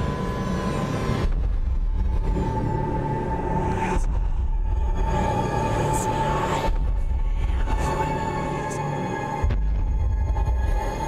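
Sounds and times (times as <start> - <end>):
low rumbling drone: 0.0 - 11.0
sustained tone: 0.0 - 11.0.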